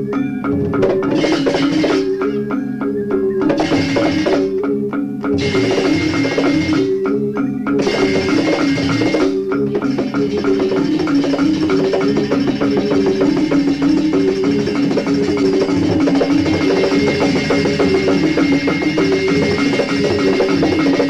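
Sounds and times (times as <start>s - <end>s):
drums: 0.0s - 21.0s
metallophones struck in fast runs: 0.5s - 2.5s, 3.1s - 4.6s, 5.3s - 21.0s.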